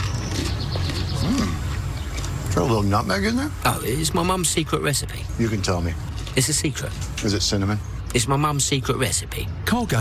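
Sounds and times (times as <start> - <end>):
eating mouth sounds: 0.0 - 2.5.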